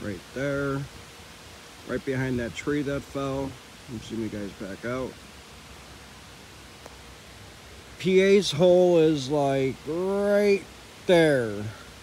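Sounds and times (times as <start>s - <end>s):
faint outdoor background hiss: 0.0s - 12.0s.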